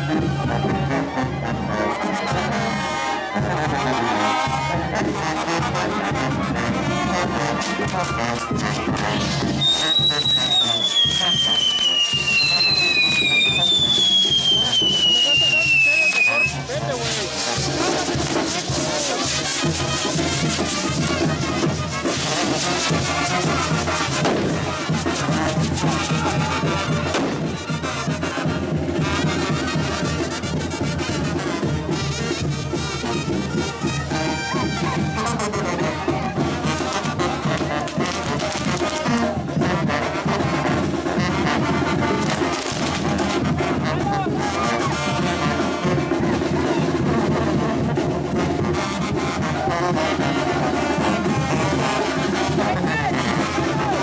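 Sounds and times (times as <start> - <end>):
brass band music: 0.0 - 54.0
fireworks crackling: 7.3 - 27.9, 36.7 - 39.4, 40.8 - 43.8
whistling fireworks: 8.0 - 28.0, 41.2 - 43.6.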